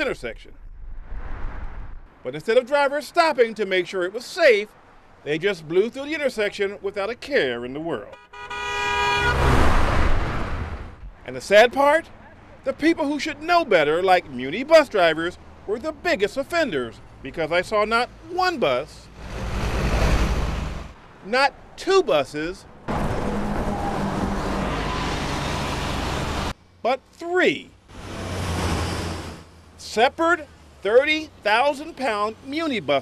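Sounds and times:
bus engine rumbling: 0:00.0 - 0:33.0
road and traffic noise: 0:00.0 - 0:33.0
car horn honk: 0:08.1 - 0:09.7
car driving past: 0:08.5 - 0:11.1, 0:19.1 - 0:21.0, 0:22.9 - 0:26.5.

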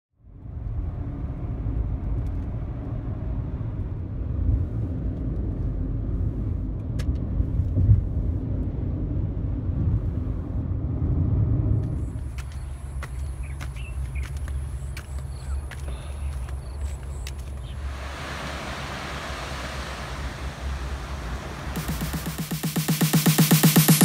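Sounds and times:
car driving at freeway speed: 0:00.2 - 0:24.0.

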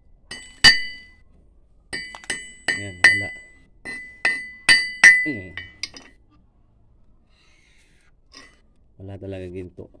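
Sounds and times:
hammer striking rock on steel: 0:00.3 - 0:01.1, 0:01.9 - 0:06.1.

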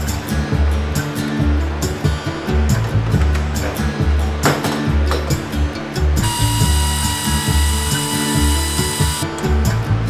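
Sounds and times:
background music with steady beat: 0:00.0 - 0:10.0
pneumatic air ratchet whining: 0:06.2 - 0:09.3.

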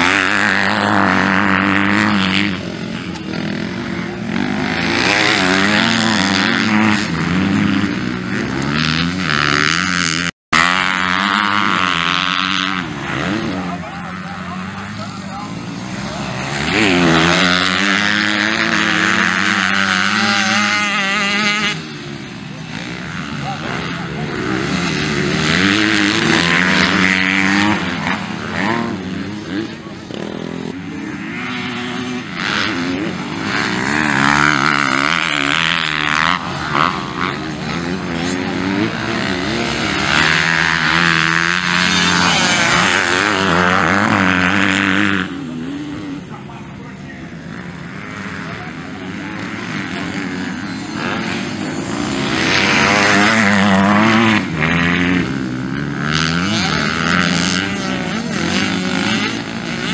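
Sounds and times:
dirt bike engines revving: 0:00.0 - 0:59.9.

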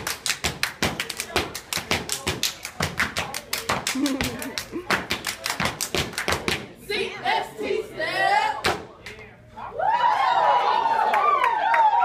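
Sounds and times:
rapid sharp claps: 0:00.0 - 0:06.7.

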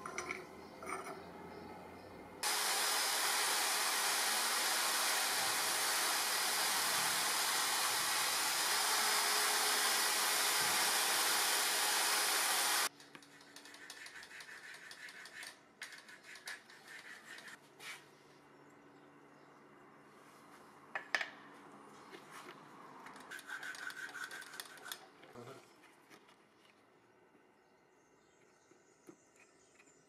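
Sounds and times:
angle grinder sanding wood: 0:02.4 - 0:12.9.

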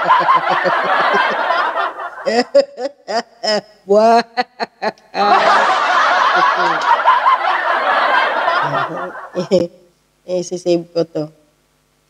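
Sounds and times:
woman laughing: 0:00.0 - 0:09.7.

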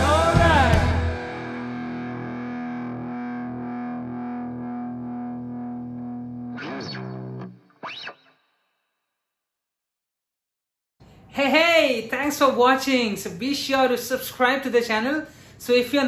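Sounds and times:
distorted electric guitar chord ringing: 0:00.0 - 0:07.6
guitar pitch glides: 0:00.0 - 0:08.4.

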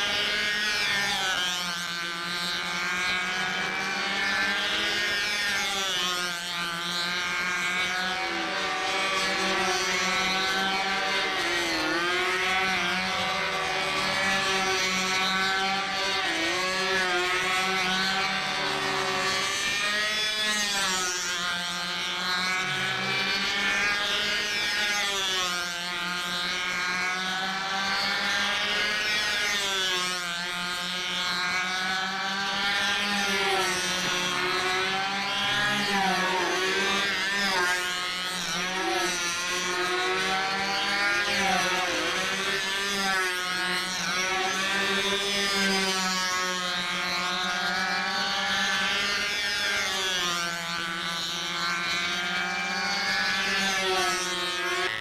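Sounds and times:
model plane engines buzzing: 0:00.0 - 0:55.0.

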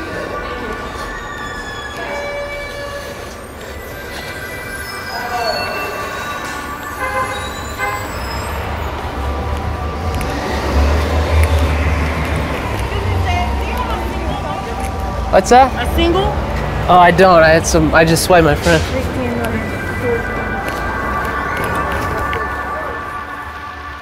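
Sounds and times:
train rumbling in: 0:00.0 - 0:24.0
metallic wheel squealing: 0:00.1 - 0:15.2.

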